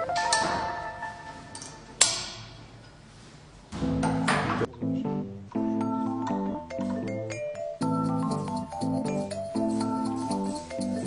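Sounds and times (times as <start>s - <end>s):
background music: 0.0s - 2.2s, 3.8s - 11.0s.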